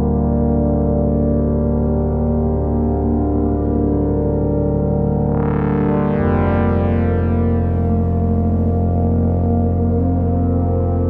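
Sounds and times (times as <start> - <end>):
deep synth bass: 0.0 - 11.0
synthesizer chords: 0.0 - 11.0.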